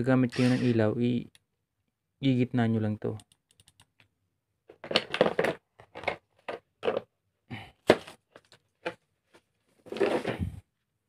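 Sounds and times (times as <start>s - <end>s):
plastic tool case clattering: 4.7s - 7.1s, 9.8s - 10.6s.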